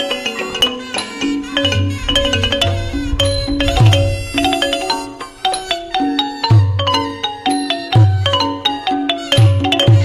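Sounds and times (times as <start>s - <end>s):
mallet percussion ringing notes: 0.0s - 10.0s.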